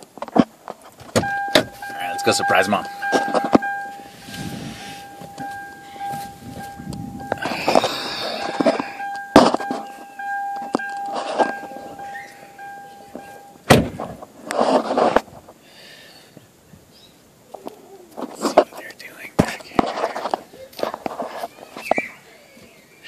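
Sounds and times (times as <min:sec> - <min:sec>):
rustling: 0:00.0 - 0:15.6, 0:17.5 - 0:22.2
car door thunking shut: 0:01.0 - 0:01.9, 0:13.6 - 0:14.2
car warning tone: 0:01.2 - 0:13.8.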